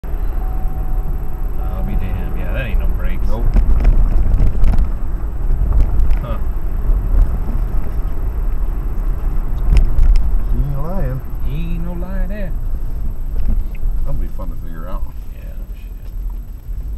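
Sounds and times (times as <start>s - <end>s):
car rolling low rumble: 0.0s - 16.9s.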